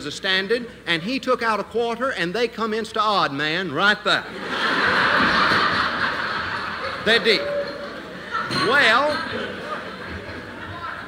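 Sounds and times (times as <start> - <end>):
audience laughter: 4.3 - 11.0.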